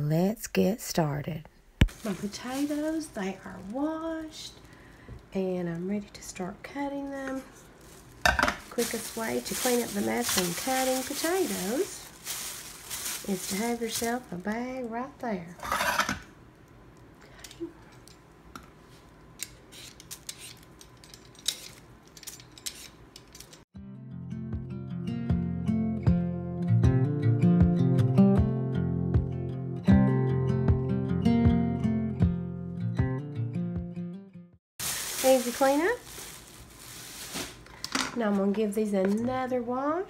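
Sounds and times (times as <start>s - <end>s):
plastic bag rustling: 1.8s - 6.2s, 7.0s - 15.1s, 34.8s - 38.8s
peeler scraping potato: 19.7s - 20.7s, 22.4s - 23.4s
acoustic guitar music: 23.8s - 34.6s.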